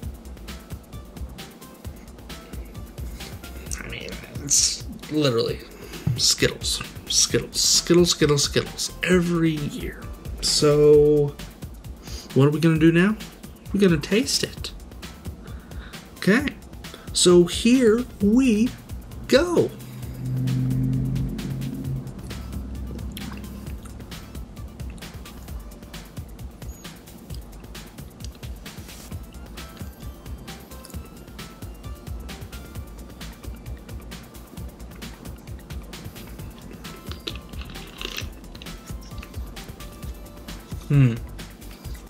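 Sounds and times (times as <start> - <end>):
quiet background music: 0.0 - 42.0
low steady note: 17.0 - 26.6
person sipping and swallowing: 22.9 - 24.0
mouth and lip clicks: 27.2 - 27.5, 28.1 - 28.5, 36.6 - 39.4.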